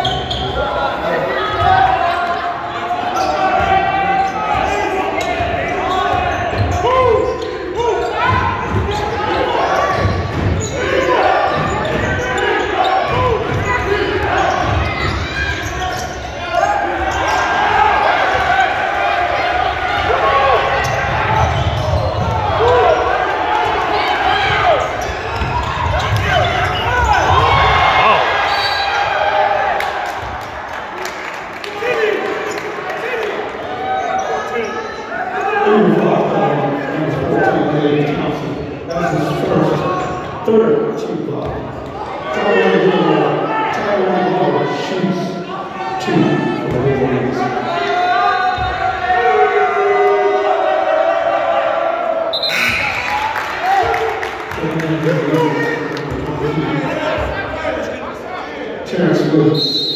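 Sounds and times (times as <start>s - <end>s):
spectators' voices and shouts: 0.0s - 59.9s.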